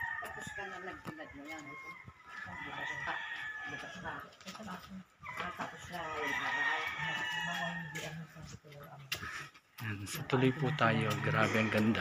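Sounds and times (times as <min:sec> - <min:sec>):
roosters crowing: 0:00.0 - 0:08.4, 0:10.1 - 0:12.0.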